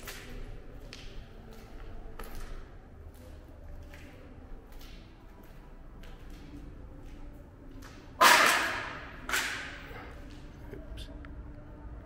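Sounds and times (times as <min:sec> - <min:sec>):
sharp impacts in bare room: 0:07.8 - 0:10.2.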